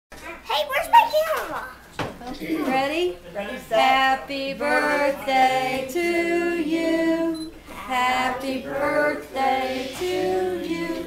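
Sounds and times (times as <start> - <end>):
child's voice: 0.3 - 1.8.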